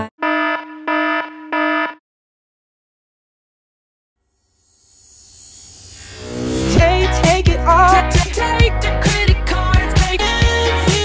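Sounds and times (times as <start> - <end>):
harsh warning beeps: 0.2 - 2.0.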